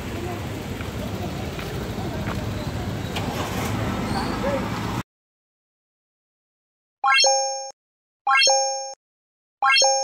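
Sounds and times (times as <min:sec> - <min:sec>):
road traffic rumble: 0:00.0 - 0:05.0.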